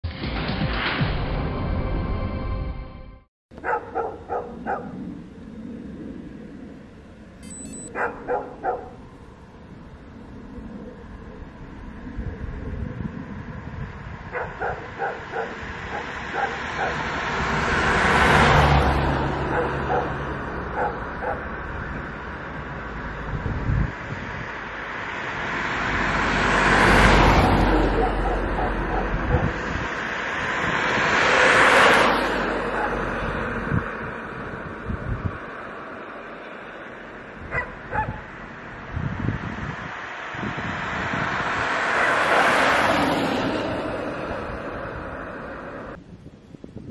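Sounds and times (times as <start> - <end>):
dog barking: 3.6 - 5.0, 7.9 - 9.0, 14.3 - 17.0, 19.4 - 21.5, 27.8 - 29.6, 32.6 - 33.0, 37.5 - 38.3, 42.0 - 42.8
cars driving past: 3.6 - 46.0
short high electronic beep: 7.4 - 8.0.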